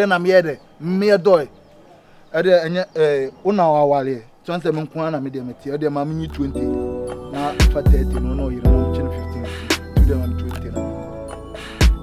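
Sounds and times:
man speaking: 0:02.3 - 0:11.0.

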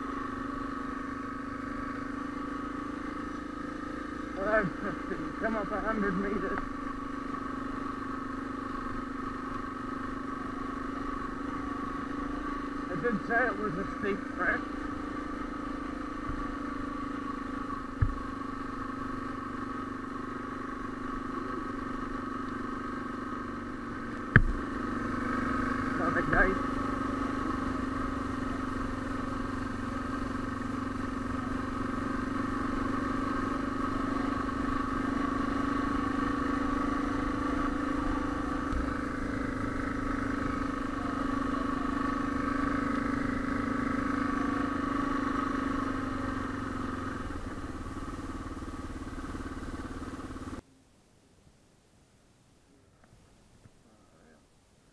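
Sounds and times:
motorcycle engine pulling uphill: 0:00.0 - 0:50.6.

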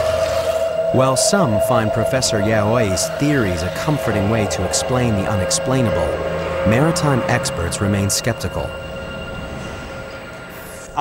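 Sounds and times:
dark ambient drone: 0:00.0 - 0:11.0
faint rising whoosh: 0:00.0 - 0:11.0
low rumbling haze: 0:00.0 - 0:11.0.

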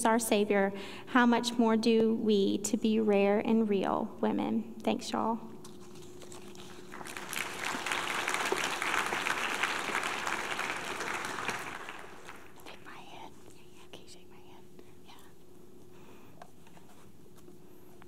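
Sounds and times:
audience applauding: 0:06.4 - 0:12.7.

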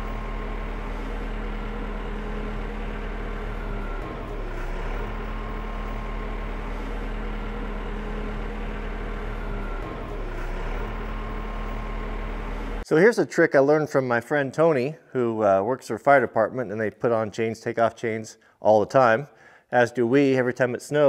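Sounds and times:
tractor diesel engine running: 0:00.0 - 0:12.8.

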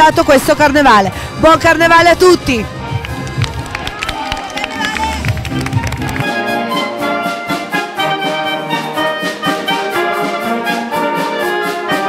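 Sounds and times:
music: 0:00.0 - 0:12.0
wind band playing sustained notes: 0:01.8 - 0:12.0
hand clapping: 0:03.0 - 0:06.4.

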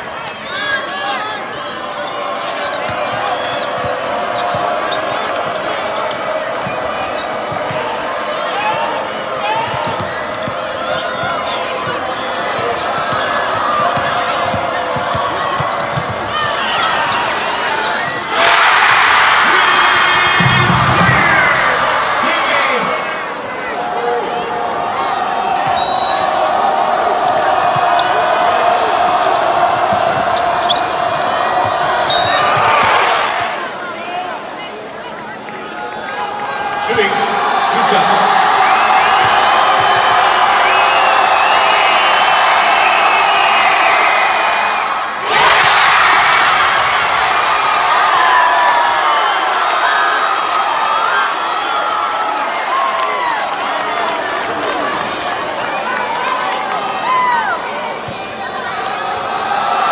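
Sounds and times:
arena crowd noise: 0:00.0 - 0:59.9
sneakers squeaking on hardwood: 0:02.4 - 0:18.3.

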